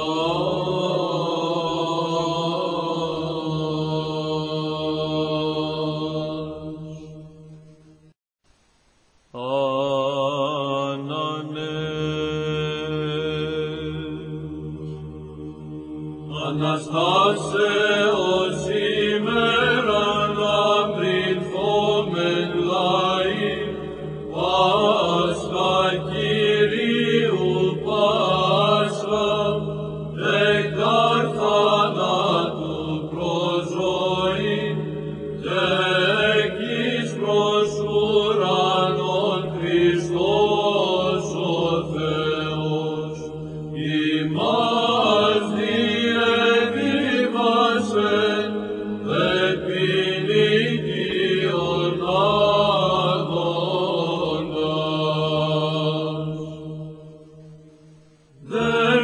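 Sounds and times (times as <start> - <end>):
hymn chant over held drone: 0.0 - 7.7, 9.3 - 59.0.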